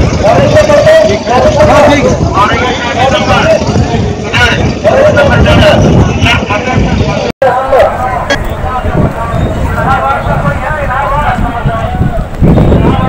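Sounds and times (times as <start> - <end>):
people chattering outdoors: 0.0 - 13.0.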